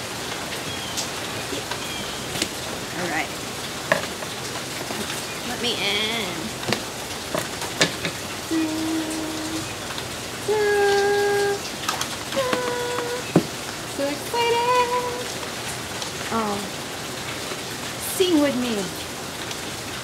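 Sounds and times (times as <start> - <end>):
heavy rain: 0.0 - 20.0
person humming: 8.4 - 9.8, 10.4 - 11.7, 12.3 - 15.3.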